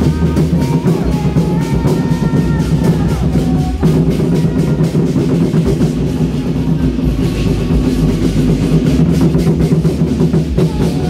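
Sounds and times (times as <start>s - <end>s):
large drums playing: 0.0s - 11.0s.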